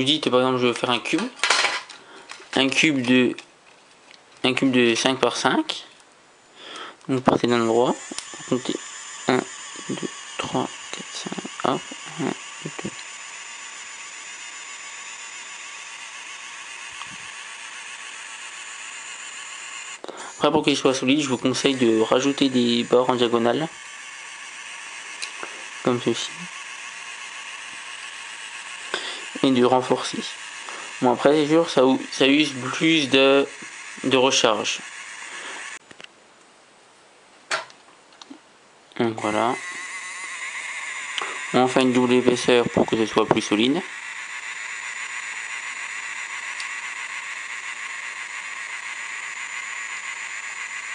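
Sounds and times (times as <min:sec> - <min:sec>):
thin steady high whine: 0:04.4 - 0:36.8, 0:39.0 - 0:50.9
printing pen whirring hiss: 0:06.6 - 0:35.8, 0:39.2 - 0:50.9.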